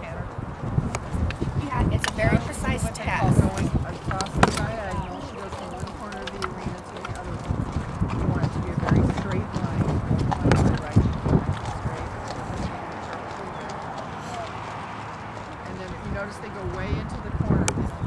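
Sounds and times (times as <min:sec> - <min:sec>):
horse hoofbeats on dirt: 0:00.3 - 0:18.0.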